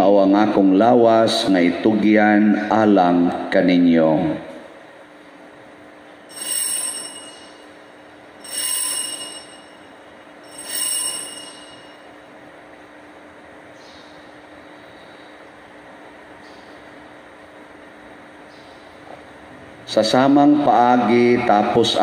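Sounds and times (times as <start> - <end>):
altar bells ringing: 6.3 - 12.2.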